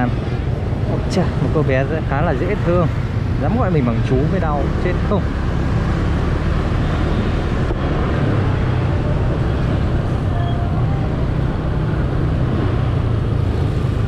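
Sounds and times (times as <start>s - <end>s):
scooter engine and road rumble: 0.0s - 14.0s
surrounding traffic: 0.0s - 14.0s.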